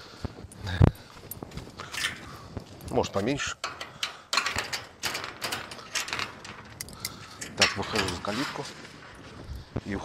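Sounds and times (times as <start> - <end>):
metal gate latch rattling: 1.8 - 9.3.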